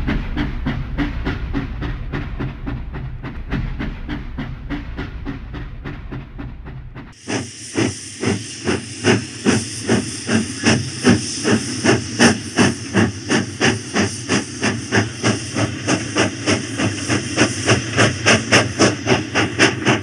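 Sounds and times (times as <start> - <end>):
toy train chuffing and hissing: 7.1 - 20.0.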